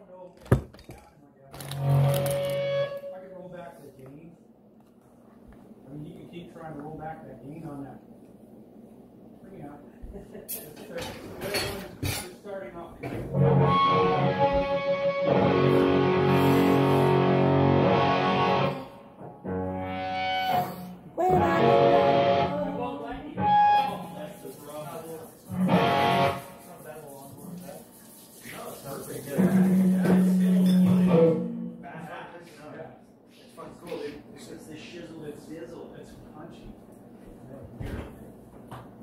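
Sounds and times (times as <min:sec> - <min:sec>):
distorted electric guitar chords: 0:13.3 - 0:23.9, 0:25.5 - 0:26.4, 0:29.6 - 0:31.9.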